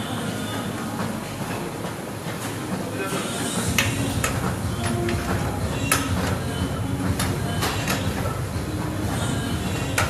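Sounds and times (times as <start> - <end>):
exercise bike low whir: 0.0 - 10.0.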